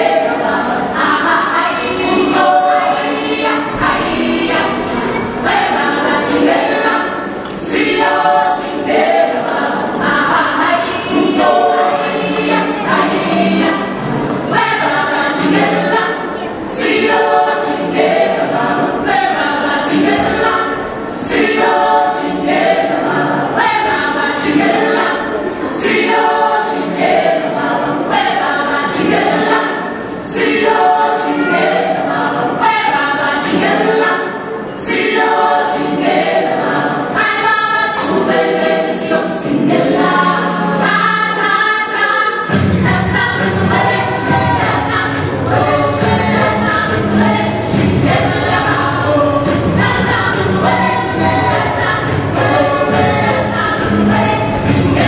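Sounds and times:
choir singing over backing music: 0.0s - 55.0s.

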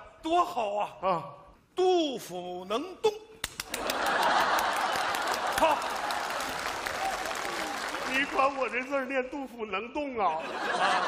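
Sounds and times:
audience applauding: 3.5s - 9.0s
audience laughing: 3.6s - 6.8s, 10.3s - 11.0s.

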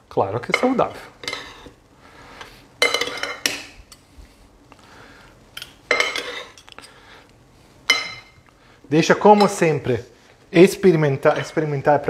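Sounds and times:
metal utensils clinking in a bowl: 2.8s - 3.7s, 5.6s - 7.0s, 7.9s - 8.4s, 11.2s - 11.6s.

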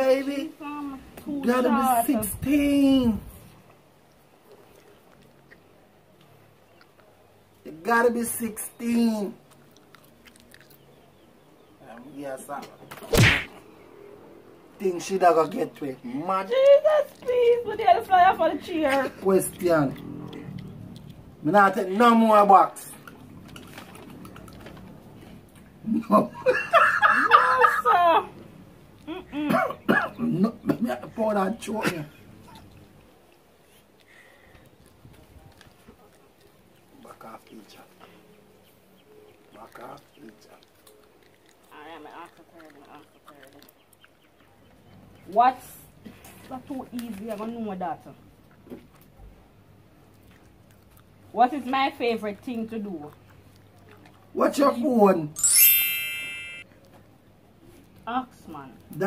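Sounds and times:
person laughing: 29.1s - 29.6s
bell-like ding: 55.4s - 56.6s.

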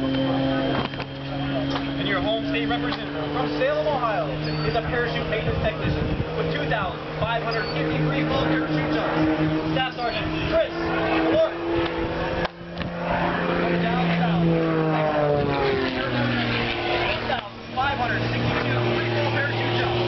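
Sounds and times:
aircraft engine drone: 0.0s - 20.0s.

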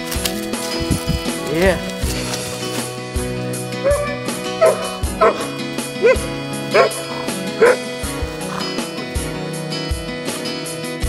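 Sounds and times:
background music with steady beat: 0.0s - 11.0s
dog barking: 3.8s - 8.8s.

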